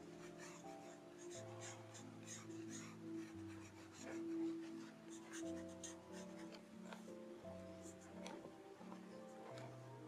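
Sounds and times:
pencil scratching on paper: 0.0s - 7.1s
soft background music chords: 0.0s - 10.0s.

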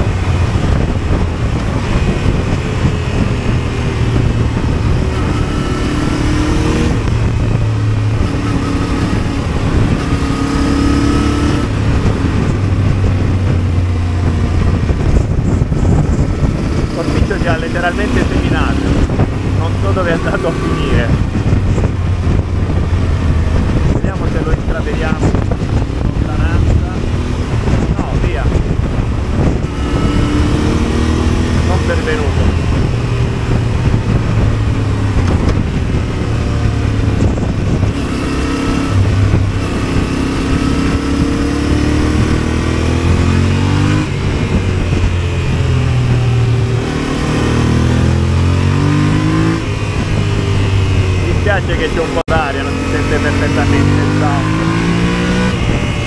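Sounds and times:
motorcycle engine running: 0.0s - 56.0s
wind and road noise: 0.0s - 56.0s.

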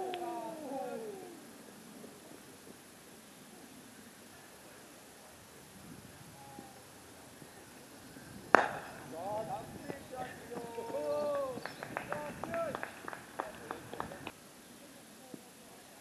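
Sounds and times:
sharp claps: 0.0s - 0.4s, 8.5s - 9.2s, 9.8s - 14.4s
players shouting: 0.0s - 1.7s, 8.6s - 14.3s
cricket bat striking ball: 8.5s - 9.1s.

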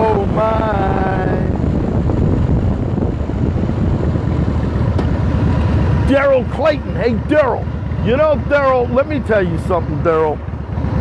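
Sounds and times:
motorcycle engine: 0.0s - 11.0s
road noise: 0.0s - 11.0s
wind buffeting microphone: 0.0s - 11.0s.

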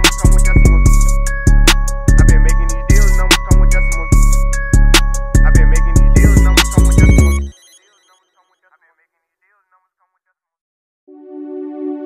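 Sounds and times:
hip-hop beat with heavy bass: 0.0s - 8.4s.

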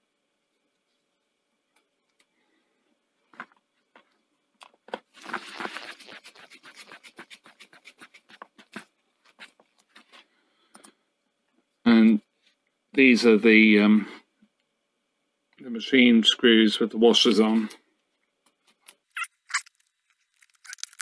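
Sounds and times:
scraping and rubbing: 5.2s - 10.2s.

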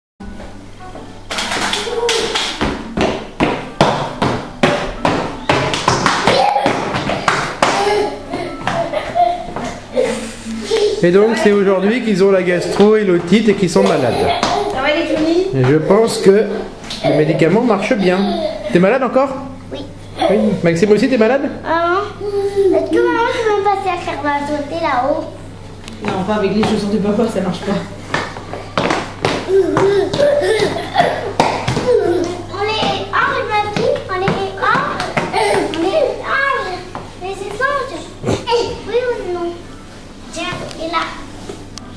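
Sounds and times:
shoes clomping on tile floor: 0.4s - 9.8s, 12.4s - 17.1s, 25.9s - 38.9s.

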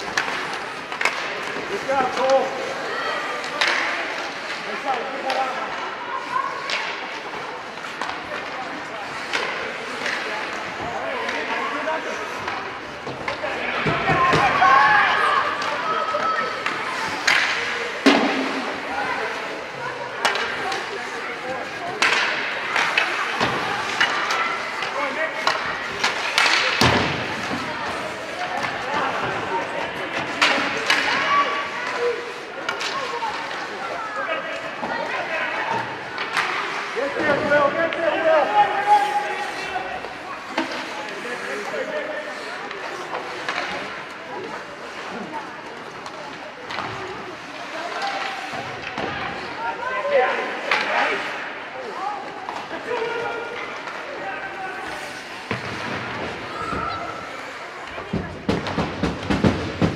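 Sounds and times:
hockey sticks and puck knocking: 0.0s - 5.8s, 6.6s - 19.0s, 20.0s - 33.8s, 35.7s - 42.0s, 42.6s - 49.2s, 52.2s - 59.9s
crowd voices and calls: 0.0s - 59.9s.

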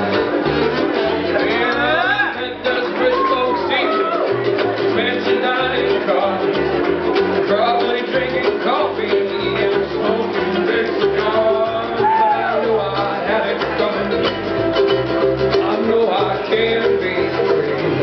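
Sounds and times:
ukuleles strumming: 0.0s - 18.0s.

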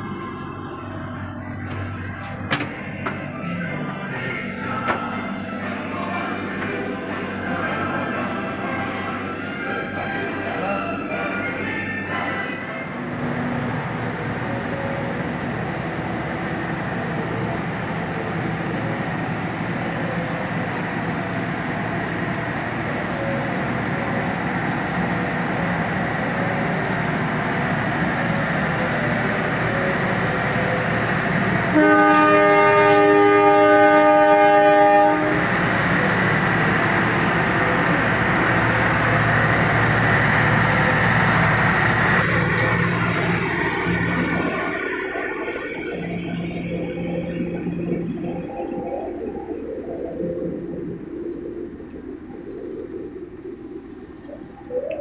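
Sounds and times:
diesel train engines running: 0.0s - 55.0s
train horn: 31.5s - 36.6s.

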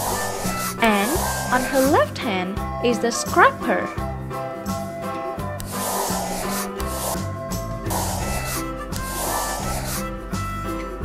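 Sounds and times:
marker rubbing across paper: 0.0s - 2.0s, 5.6s - 10.1s
background music: 0.0s - 11.0s.

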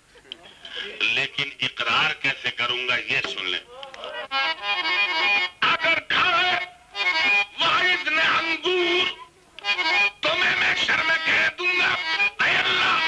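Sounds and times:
harmonium: 0.7s - 13.0s
man singing: 5.6s - 9.3s, 10.1s - 13.0s.

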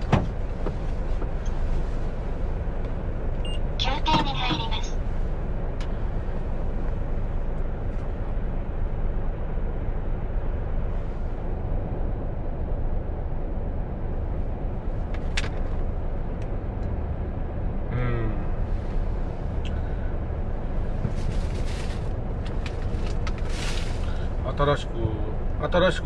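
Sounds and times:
diesel engine idling: 15.8s - 26.0s.

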